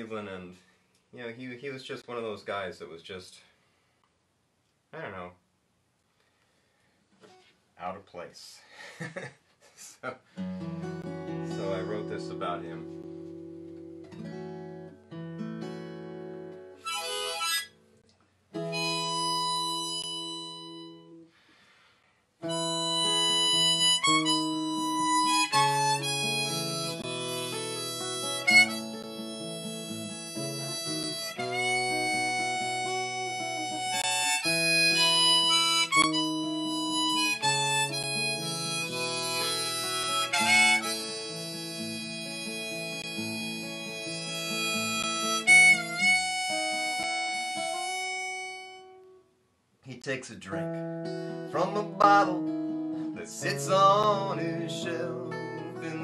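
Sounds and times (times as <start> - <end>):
acoustic guitar: 7.1 - 7.6, 9.5 - 49.4, 50.0 - 56.0
harmonica: 16.8 - 17.8, 18.6 - 21.4, 22.4 - 49.1.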